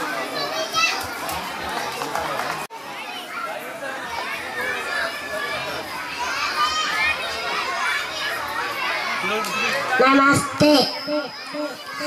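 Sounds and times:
babble of children's voices: 0.0s - 10.0s, 10.6s - 12.0s.

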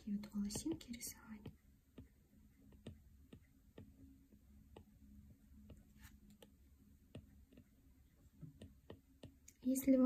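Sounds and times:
stylus tapping on glass screen: 0.0s - 4.1s, 8.4s - 9.6s.

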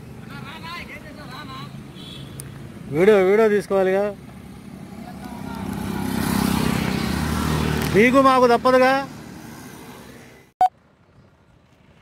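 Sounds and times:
motor scooter passing by: 4.9s - 10.5s.

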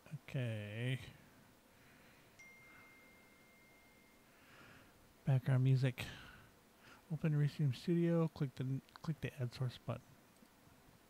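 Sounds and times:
faint high ringing tone: 1.8s - 6.5s.

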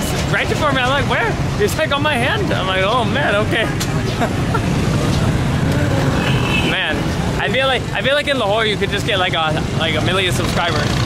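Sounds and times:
motorcycle engines rumbling: 0.0s - 11.0s.

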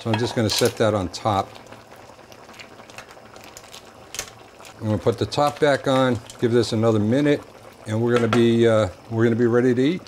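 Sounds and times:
broth simmering in a pot: 0.0s - 10.0s.

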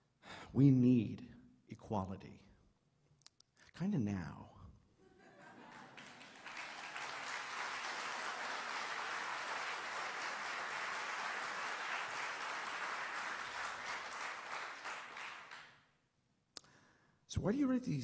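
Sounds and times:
audience applauding: 5.5s - 15.8s.

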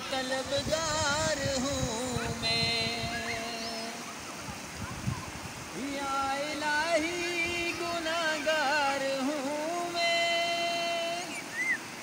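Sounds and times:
man singing a long note: 0.0s - 4.0s, 5.8s - 11.4s.

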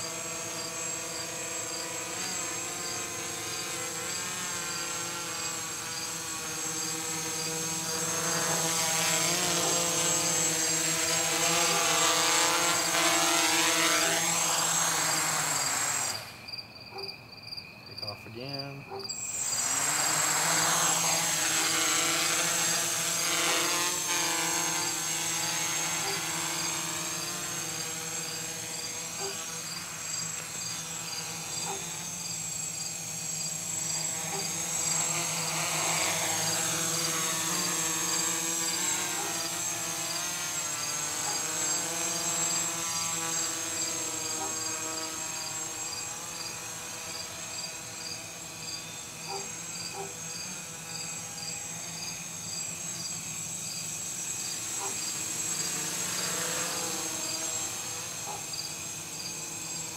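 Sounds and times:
quadcopter propellers buzzing: 0.0s - 17.1s, 17.9s - 59.9s.

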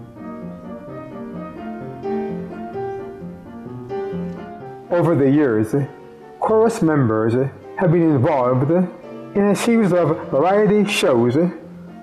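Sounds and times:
upright piano duet: 0.0s - 12.0s.

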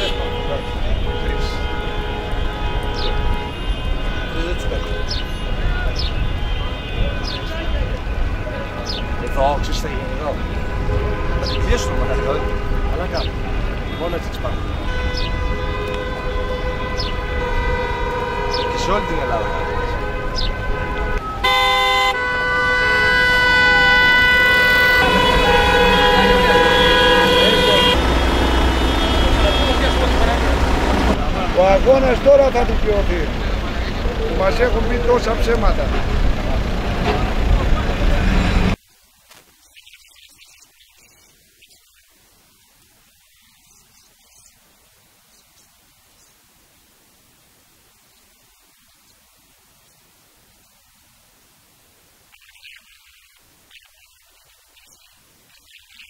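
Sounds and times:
car horns honking: 0.0s - 38.8s.

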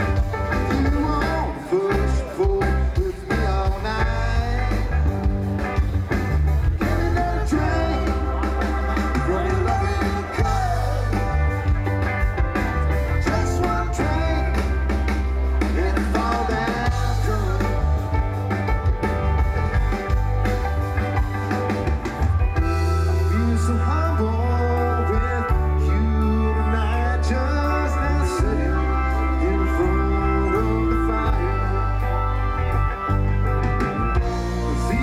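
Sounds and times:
drum kit: 0.0s - 25.9s, 28.4s - 35.0s
electric bass: 0.0s - 35.0s
electric guitar: 0.0s - 35.0s
keyboards: 0.0s - 35.0s.

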